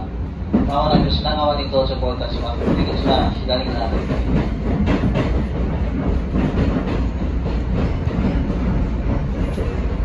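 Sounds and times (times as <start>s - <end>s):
electric train rumbling: 0.0s - 10.0s
wheels clacking over rail joints: 0.4s - 10.0s.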